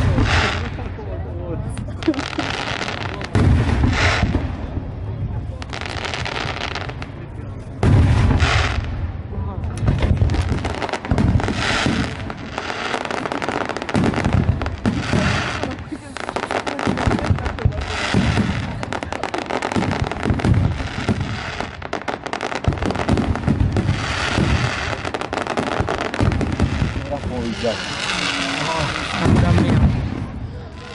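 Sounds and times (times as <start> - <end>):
fireworks booming: 0.0 - 30.9
fireworks crackling: 0.0 - 30.9.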